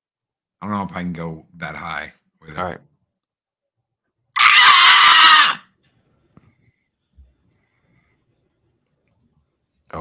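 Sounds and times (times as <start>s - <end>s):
man screeching like a bat: 4.4s - 5.7s.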